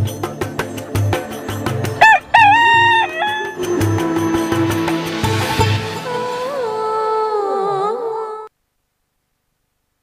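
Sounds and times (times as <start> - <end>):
background music with steady beat: 0.0 - 7.0
rooster crowing: 2.0 - 3.7.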